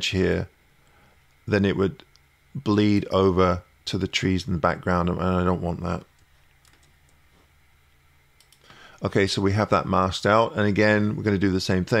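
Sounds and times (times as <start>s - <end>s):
faint short clicks: 8.4s - 8.7s.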